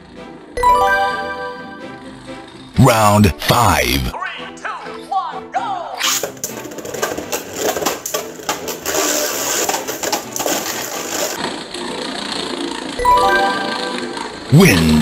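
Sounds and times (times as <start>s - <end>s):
background music: 0.0s - 11.4s, 13.0s - 15.0s
spinning tops whirring and clashing: 6.1s - 11.6s.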